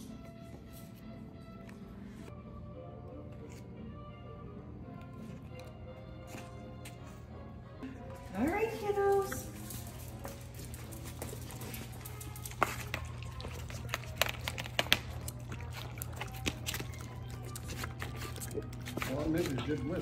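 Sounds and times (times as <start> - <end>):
dogs chewing and licking: 7.9 - 20.0.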